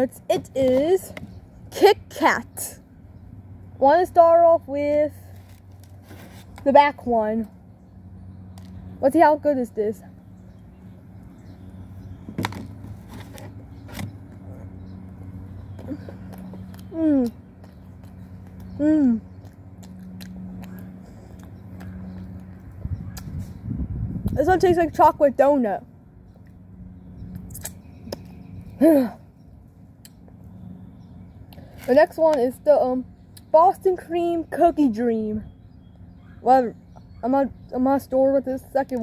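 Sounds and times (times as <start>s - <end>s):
low hum: 0.0s - 38.4s
boy speaking: 6.6s - 7.4s, 36.5s - 39.0s
biting and chewing donut: 12.1s - 23.6s.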